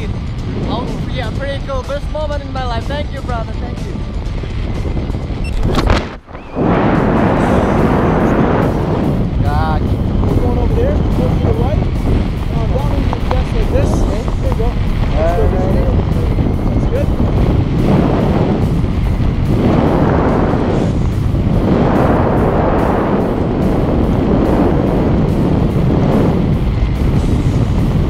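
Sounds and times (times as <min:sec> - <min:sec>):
wind rushing over microphone: 0:00.0 - 0:28.0.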